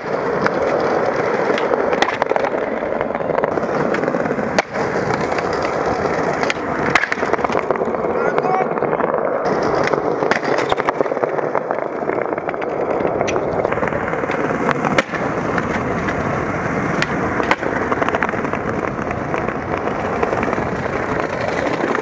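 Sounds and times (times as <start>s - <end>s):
skateboard clacking: 0.0s - 22.0s
skateboard wheels rolling on stone: 0.0s - 22.0s.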